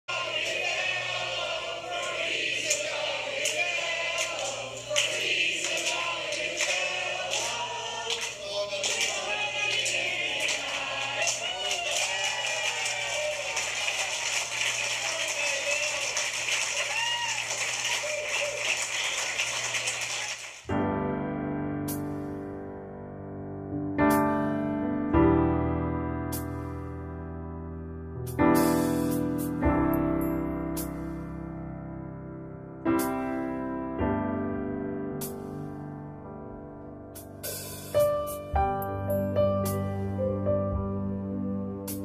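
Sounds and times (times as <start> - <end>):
group of people singing: 0.0 - 11.8
voices: 0.1 - 16.6
piano music: 20.7 - 42.0.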